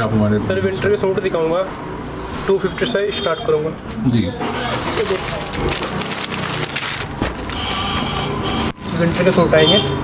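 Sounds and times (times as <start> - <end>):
plastic packaging crinkling: 4.7 - 10.0.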